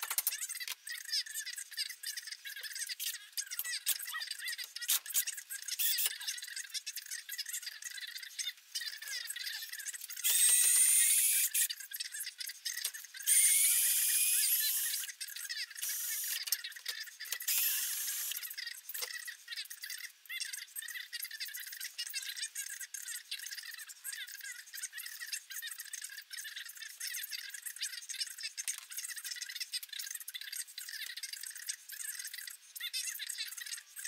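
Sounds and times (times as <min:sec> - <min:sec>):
power drill whining: 0:10.2 - 0:11.7, 0:13.3 - 0:15.1, 0:17.5 - 0:18.4.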